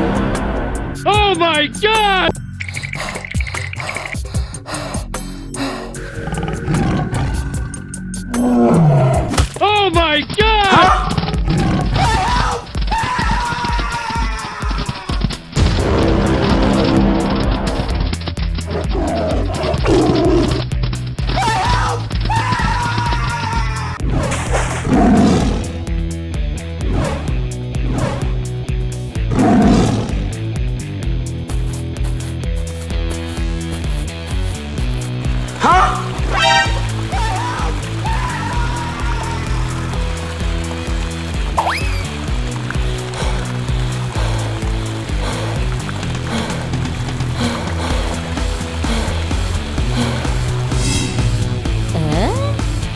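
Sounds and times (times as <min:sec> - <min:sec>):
background music: 0:00.0 - 0:52.9
tiger roar: 0:06.0 - 0:09.3, 0:10.7 - 0:12.3, 0:18.6 - 0:20.7, 0:24.0 - 0:25.8, 0:29.2 - 0:30.3
cartoon tiger roar: 0:29.3 - 0:30.2.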